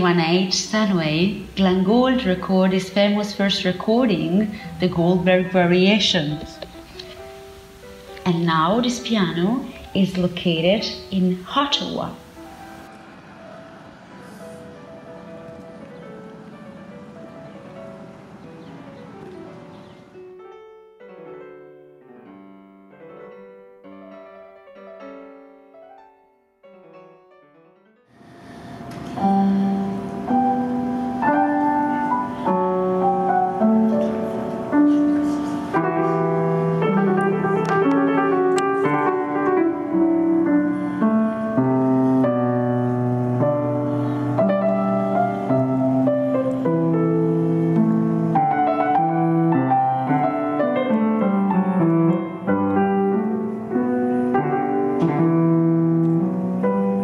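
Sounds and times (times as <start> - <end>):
piano chord ringing: 0.0 - 57.0.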